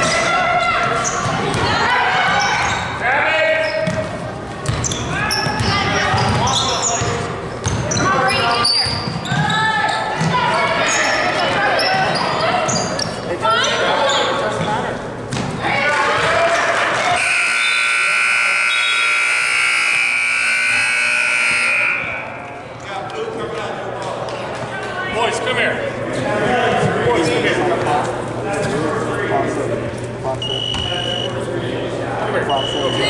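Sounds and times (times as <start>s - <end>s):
buzzing scoreboard horn: 17.1s - 22.6s
voices calling out: 30.2s - 31.4s.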